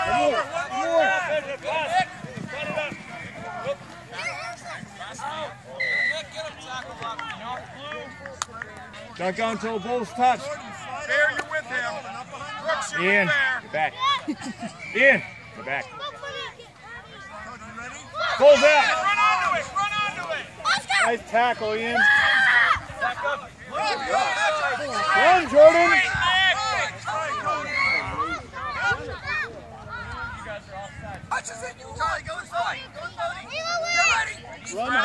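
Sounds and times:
voices calling out: 0.0 - 35.0
referee's whistle blast: 5.8 - 6.3.

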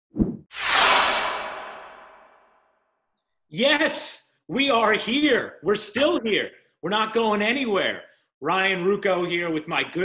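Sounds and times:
long whoosh: 0.5 - 2.5.

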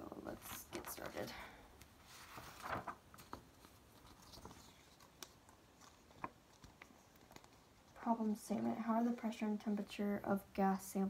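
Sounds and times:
paper taps and rustles: 1.8 - 7.7.

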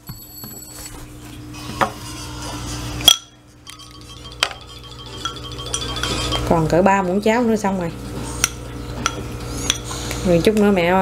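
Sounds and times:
spoon clinking on bowl: 3.1 - 6.8.

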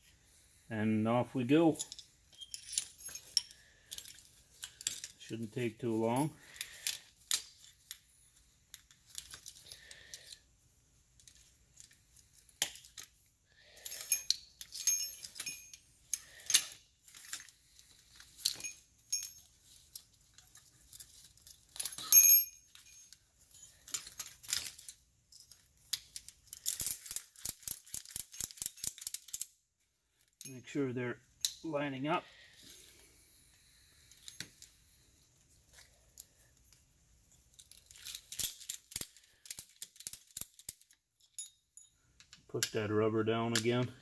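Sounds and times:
metal parts clinking: 1.6 - 10.5, 11.1 - 31.7, 33.9 - 44.0
sharp metallic clink: 21.8 - 23.1.

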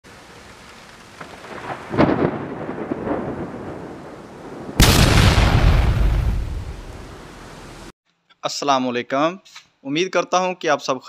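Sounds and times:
thunder-like swell with cracks: 4.7 - 7.0.

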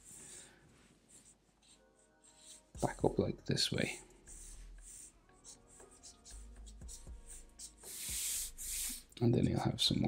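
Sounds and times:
marker sketching on paper: 0.0 - 9.2.

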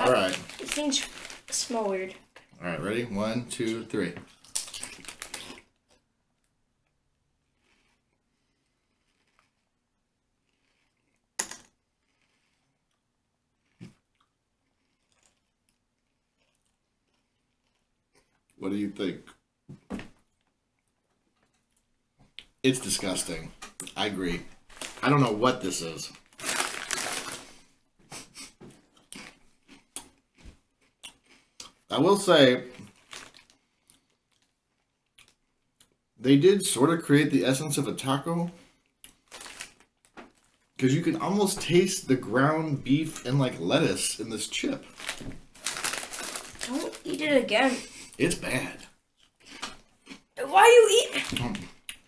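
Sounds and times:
chip bag rustling: 0.0 - 2.0, 4.4 - 5.7, 24.7 - 27.7, 32.2 - 33.6, 39.2 - 40.6, 44.7 - 47.8
quiet chewing: 4.3 - 9.8, 10.4 - 18.6, 28.3 - 31.9, 32.8 - 36.0, 49.1 - 50.4
biting into crisp chips: 4.4 - 6.0.

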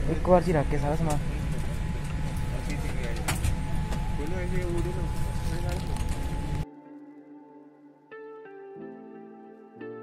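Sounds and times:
airliner cabin hum: 0.0 - 6.6
low voices of passengers: 1.1 - 6.3.

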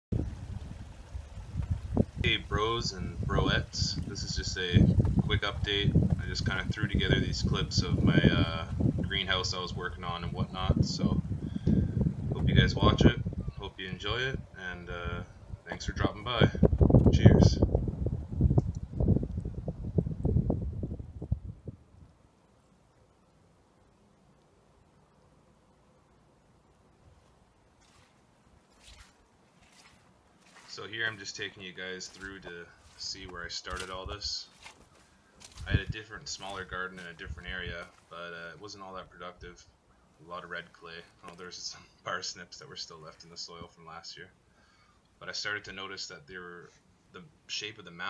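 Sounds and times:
wind buffeting microphone: 0.1 - 22.2, 35.4 - 37.8
low thumps and knocks: 1.4 - 2.2, 4.8 - 7.8, 16.6 - 17.9.

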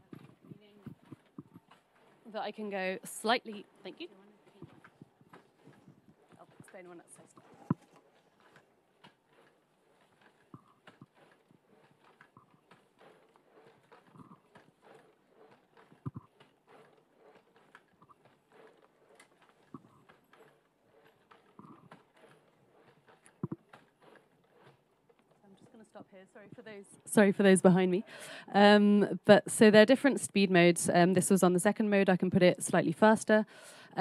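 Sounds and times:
exoskeleton footsteps knocking: 0.0 - 33.2.

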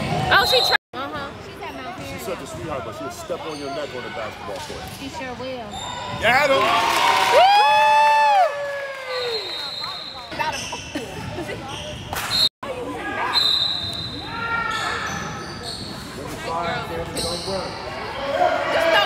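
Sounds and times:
sneakers squeaking: 1.6 - 6.5, 9.2 - 12.5, 13.1 - 18.2.

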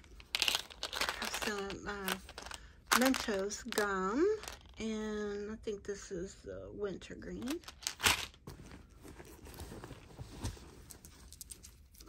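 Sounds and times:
rummaging through a handbag: 0.0 - 4.8, 7.4 - 12.0.

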